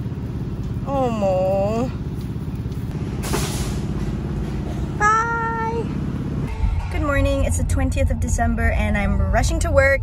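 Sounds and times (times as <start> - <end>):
vehicle engine idling: 0.0 - 9.9.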